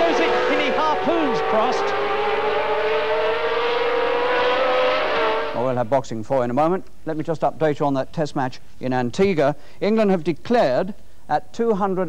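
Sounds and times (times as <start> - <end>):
racing car engine whining at high revs: 0.0 - 5.6.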